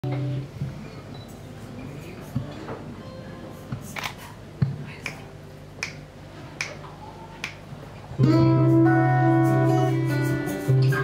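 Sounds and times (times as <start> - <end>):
guitars: 0.0 - 0.8, 8.0 - 11.0
finger snaps: 5.0 - 5.2, 5.8 - 6.0, 6.6 - 6.8, 7.4 - 7.6.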